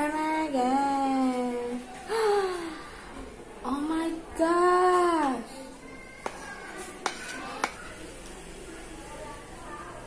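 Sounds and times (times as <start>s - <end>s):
fork clinking on ceramic plate: 7.0s - 7.8s.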